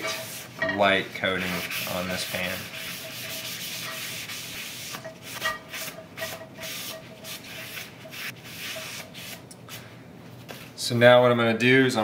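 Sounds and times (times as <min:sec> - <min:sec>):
paper towel scrubbing skillet: 0:00.0 - 0:00.6, 0:01.2 - 0:09.4.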